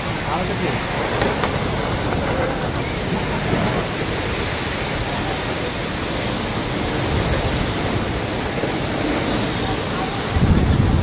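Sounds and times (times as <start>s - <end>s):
storm wind on microphone: 0.0s - 11.0s.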